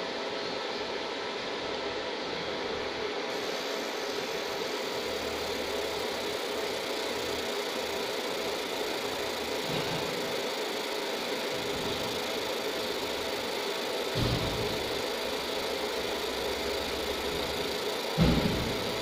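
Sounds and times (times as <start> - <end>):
laser marking machine humming: 0.0 - 19.0.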